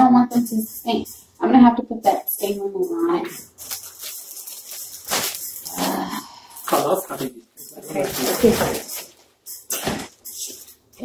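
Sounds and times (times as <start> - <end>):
plastic bag crinkling: 3.4 - 10.7.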